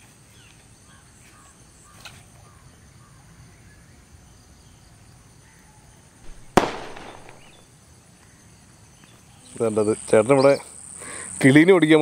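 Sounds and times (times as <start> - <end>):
faint insects: 0.0 - 12.0
sharp ringing crack: 6.3 - 7.6.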